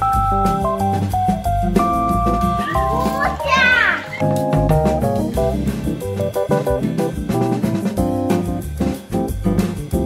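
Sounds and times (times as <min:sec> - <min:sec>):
background music with held notes: 0:00.0 - 0:10.0
child's high-pitched voice: 0:02.6 - 0:04.2.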